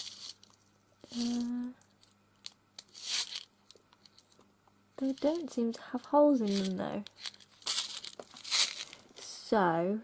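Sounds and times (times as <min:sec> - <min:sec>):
packaging crinkling: 0:00.0 - 0:04.4, 0:06.4 - 0:09.2.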